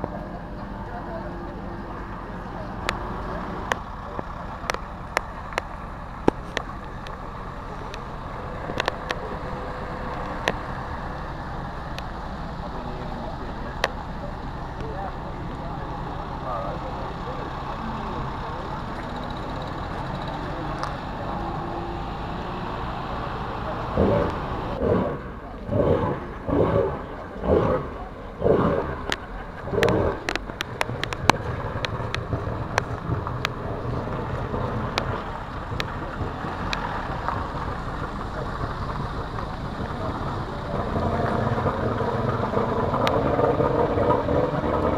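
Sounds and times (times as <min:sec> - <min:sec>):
murmur of voices: 0:00.0 - 0:44.9
vehicle engine idling: 0:00.0 - 0:44.9
scattered clicks: 0:02.8 - 0:07.2, 0:07.8 - 0:10.7, 0:28.5 - 0:44.9.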